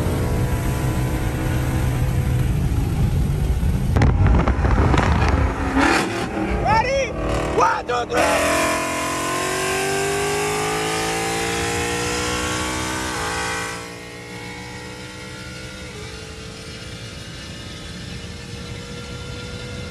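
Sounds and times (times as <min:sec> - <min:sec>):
car engine at full throttle: 0:00.0 - 0:19.9
road noise: 0:00.0 - 0:19.9.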